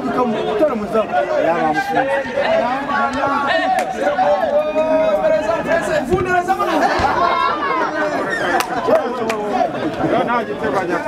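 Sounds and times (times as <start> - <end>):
voices talking over one another: 0.0 - 11.0.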